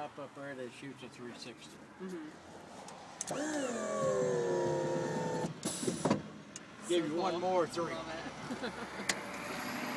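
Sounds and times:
electric motor whining: 3.2 - 5.6.

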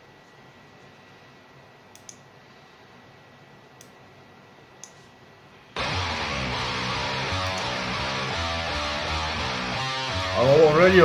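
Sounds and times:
steady low hiss: 0.0 - 11.0
faint short clicks: 1.9 - 2.3.

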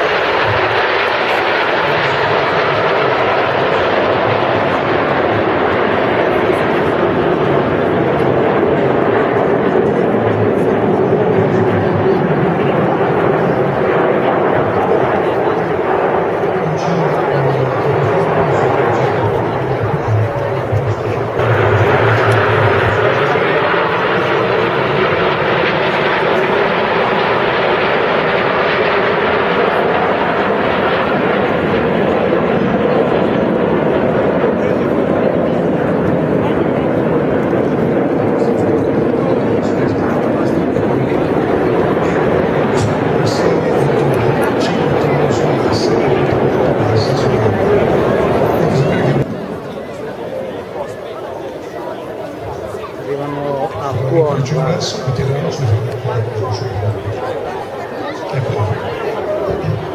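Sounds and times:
crowd chatter: 0.0 - 59.9
jets roaring overhead: 0.0 - 59.9.

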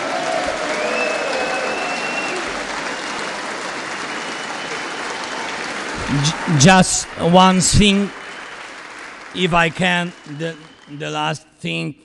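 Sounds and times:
audience applause: 0.0 - 11.3.

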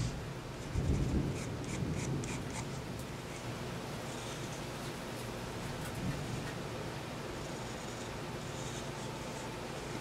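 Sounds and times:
pencil scratching on paper: 0.6 - 3.5, 7.4 - 10.0.

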